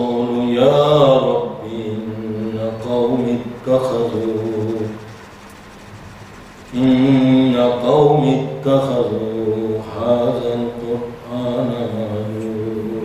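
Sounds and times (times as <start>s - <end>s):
man chanting recitation: 0.0s - 5.2s, 6.6s - 13.0s.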